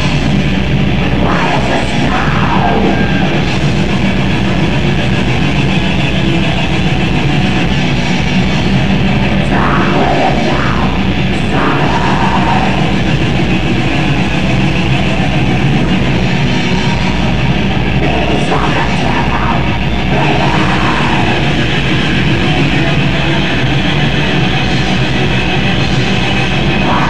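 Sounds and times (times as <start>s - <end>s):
distorted electric guitars: 0.0s - 27.0s.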